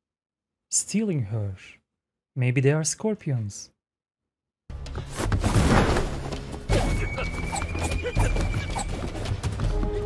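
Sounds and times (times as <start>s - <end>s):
soft background music: 4.7s - 10.0s.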